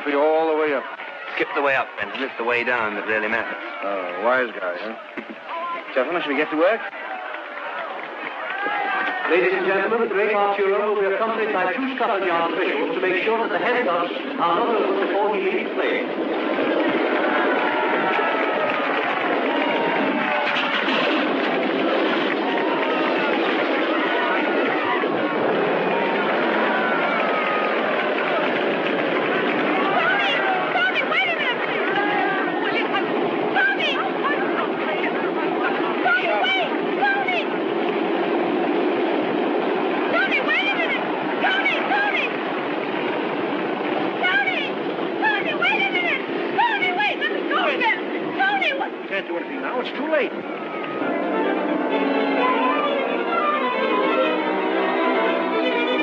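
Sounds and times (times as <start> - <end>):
crowd calling out and cheering: 0.0 - 56.0
aeroplane engine drone: 9.3 - 56.0.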